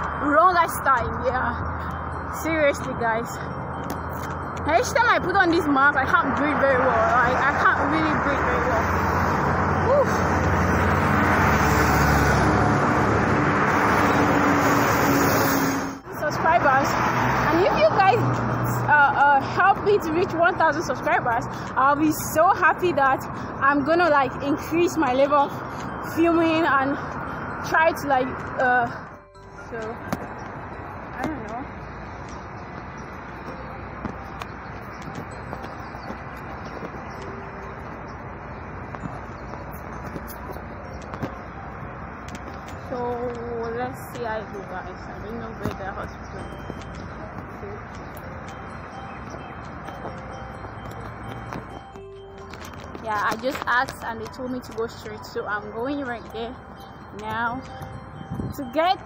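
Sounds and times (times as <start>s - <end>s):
road traffic rush: 0.0s - 59.0s
vehicle engine hum: 0.0s - 59.0s
wind noise on microphone: 0.0s - 59.0s.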